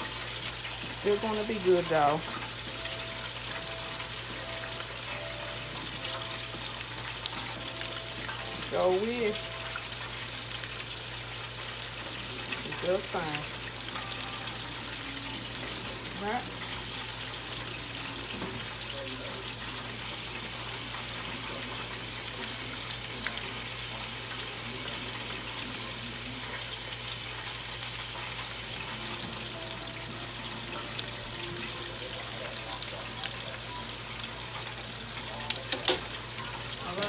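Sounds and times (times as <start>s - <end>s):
chicken deep-frying in oil: 0.0s - 37.0s.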